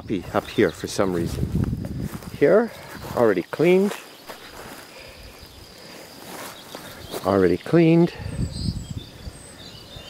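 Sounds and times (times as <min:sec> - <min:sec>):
soft rustling: 0:01.2 - 0:07.4.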